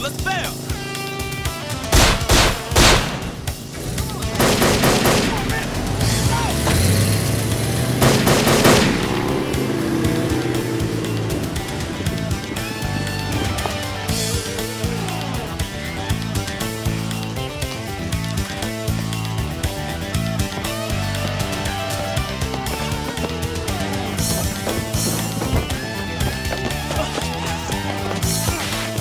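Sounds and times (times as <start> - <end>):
dramatic background music: 0.0 - 29.0
rapid gunfire volleys: 1.8 - 6.4, 7.7 - 9.7
gunshots: 1.9 - 6.9, 8.0 - 9.6.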